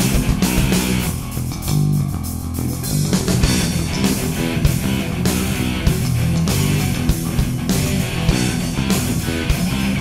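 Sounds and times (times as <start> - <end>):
drum and cymbal strokes: 0.0 - 10.0
held bass and guitar notes: 0.0 - 10.0
live rock band playing: 0.0 - 10.0.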